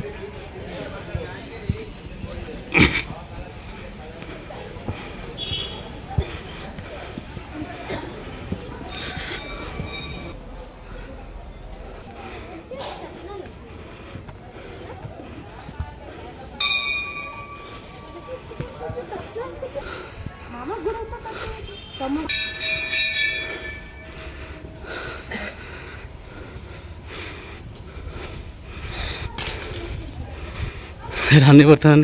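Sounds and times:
footsteps on stone steps: 0:00.0 - 0:32.0
metal bell ringing: 0:08.8 - 0:10.4, 0:16.6 - 0:18.8, 0:22.2 - 0:24.8.

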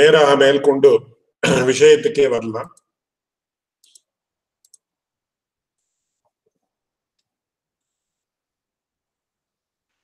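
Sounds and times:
man's voice: 0:00.0 - 0:02.8
computer mouse clicks: 0:03.8 - 0:04.9.

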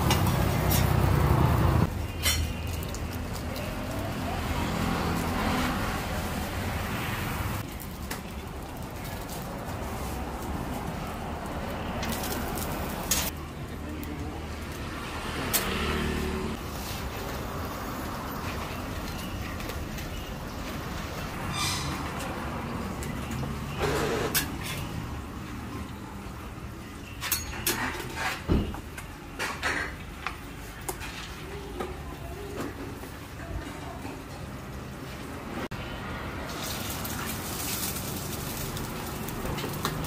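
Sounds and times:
motor vehicle humming: 0:00.0 - 0:07.7
low rumble of traffic: 0:00.0 - 0:40.0.

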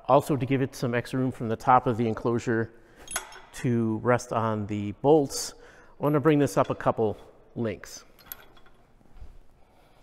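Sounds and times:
metal chain and hook clinking: 0:03.0 - 0:03.6, 0:08.0 - 0:09.0.

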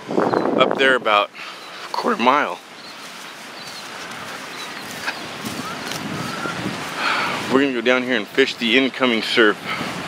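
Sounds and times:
ocean surf on beach: 0:00.0 - 0:10.0.

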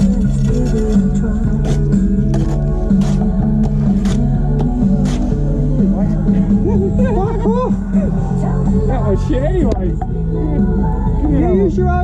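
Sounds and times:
pop music on a radio: 0:00.0 - 0:12.0.

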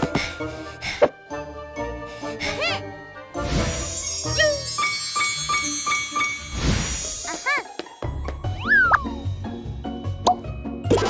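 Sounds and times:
upbeat children's music: 0:00.0 - 0:11.0.

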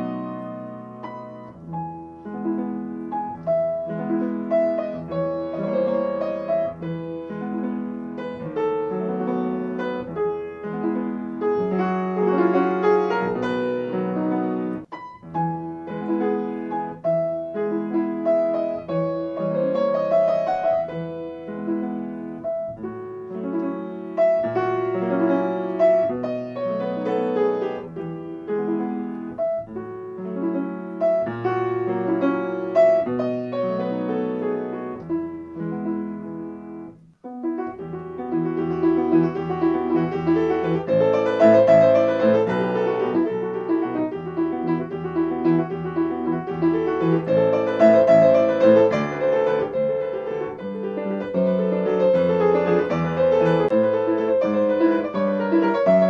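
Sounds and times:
solo piano piece: 0:00.0 - 0:56.0.

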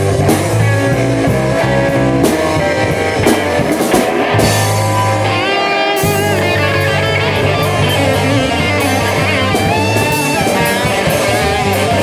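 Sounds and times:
bass: 0:00.0 - 0:12.0
drum kit with cymbals: 0:00.0 - 0:12.0
electric guitars: 0:00.0 - 0:12.0.

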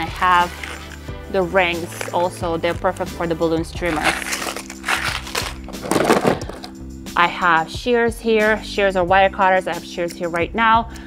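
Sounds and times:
background music: 0:00.0 - 0:11.0
plastic bag crinkling: 0:00.2 - 0:01.0, 0:01.8 - 0:02.4, 0:03.8 - 0:06.7.

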